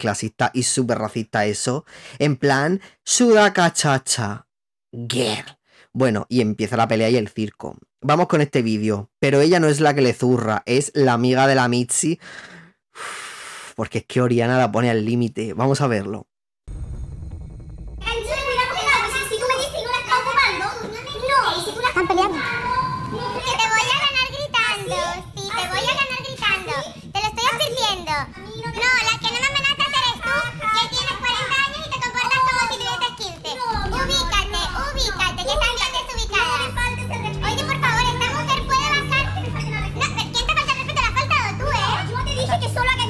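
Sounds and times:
background music: 18.0 - 43.0.

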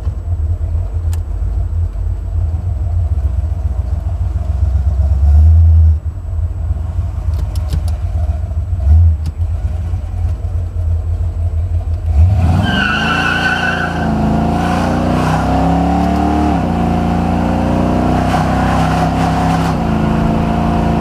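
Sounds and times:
car engine rumbling while driving: 0.0 - 21.0.

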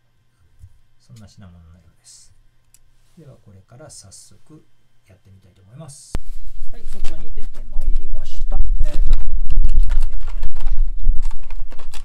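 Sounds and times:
electrical cable clicks and rustles: 8.9 - 12.0.

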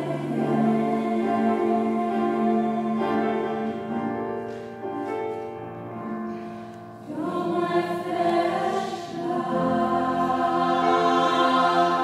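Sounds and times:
mixed choir singing: 0.0 - 4.2, 6.9 - 12.0.

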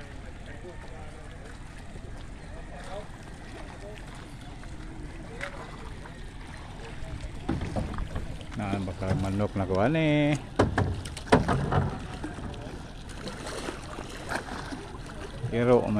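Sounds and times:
faint distant voices: 0.0 - 9.6
people calling out from boat: 0.0 - 15.9.

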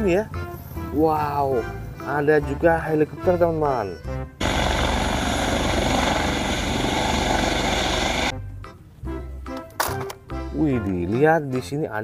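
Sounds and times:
helicopter rotor and engine: 4.4 - 8.3.

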